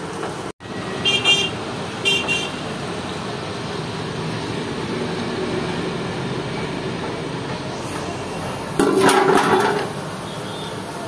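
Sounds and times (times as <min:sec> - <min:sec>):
street noise: 0:00.0 - 0:11.0
vehicle horn double beep: 0:10.2 - 0:10.9.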